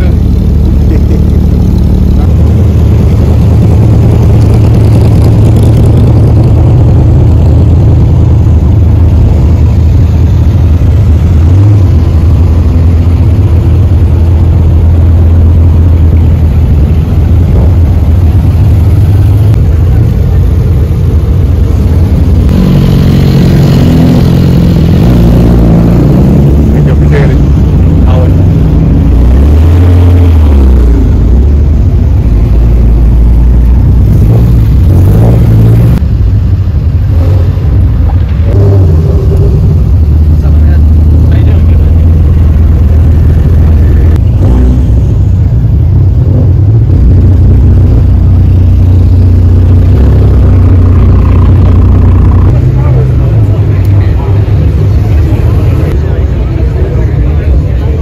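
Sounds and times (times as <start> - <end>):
engine revving: 0.0 - 58.0
sports car engines rumbling: 0.0 - 58.0.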